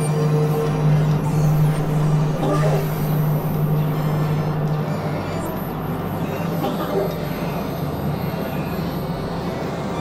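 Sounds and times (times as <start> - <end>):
electronic drone music: 0.0 - 10.0.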